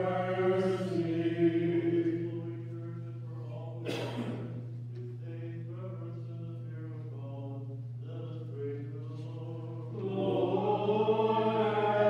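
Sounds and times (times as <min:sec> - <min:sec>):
liturgical chant: 0:00.0 - 0:12.0
steady low hum: 0:00.0 - 0:12.0.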